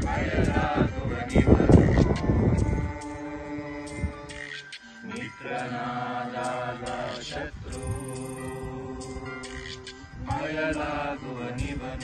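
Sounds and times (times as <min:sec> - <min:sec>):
person singing devotional chant: 0:00.0 - 0:12.0.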